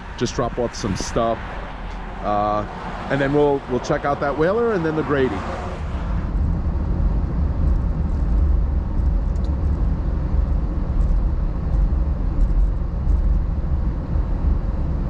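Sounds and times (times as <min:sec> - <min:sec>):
car engine rumble: 0:00.0 - 0:15.0
road noise inside car: 0:00.0 - 0:15.0.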